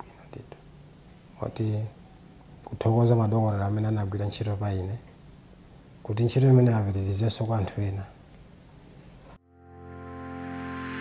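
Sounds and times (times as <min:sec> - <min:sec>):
man speaking softly: 0:06.0 - 0:08.2.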